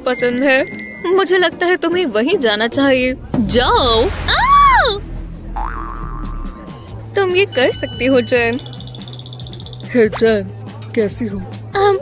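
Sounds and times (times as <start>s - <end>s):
background music: 0.0s - 12.0s
comic boing sound effect: 5.5s - 6.9s.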